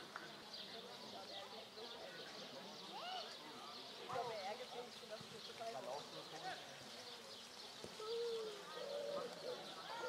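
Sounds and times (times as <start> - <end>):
faint voices talking: 0.0 - 10.0
steady outdoor hiss: 0.0 - 10.0.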